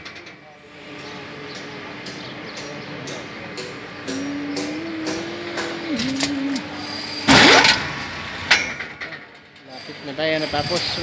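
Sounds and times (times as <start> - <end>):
electric hoist motor humming: 0.7 - 8.5.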